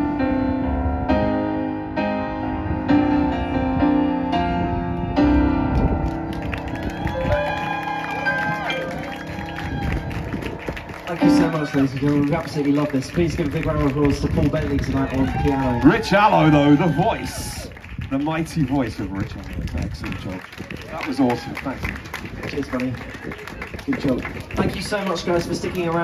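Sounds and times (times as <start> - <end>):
piano chords through speakers: 0.0 - 16.2
audience clapping and cheering: 5.7 - 26.0.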